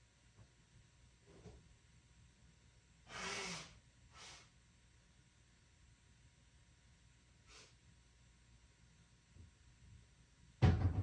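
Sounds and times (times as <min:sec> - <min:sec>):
person breathing: 0:03.1 - 0:04.5.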